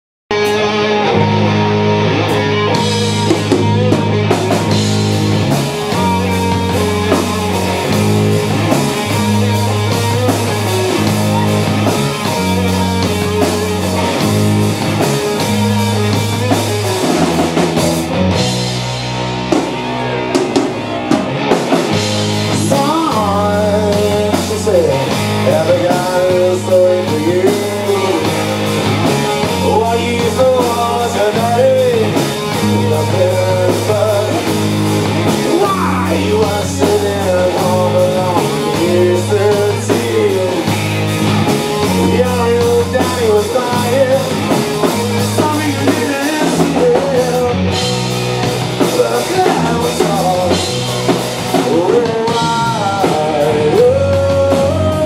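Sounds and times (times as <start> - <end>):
rock band playing loudly: 0.3 - 55.0.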